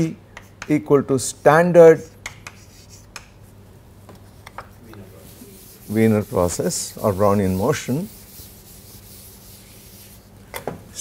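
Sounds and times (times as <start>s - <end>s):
chalk scraping on blackboard: 2.3s - 3.5s, 4.2s - 10.3s.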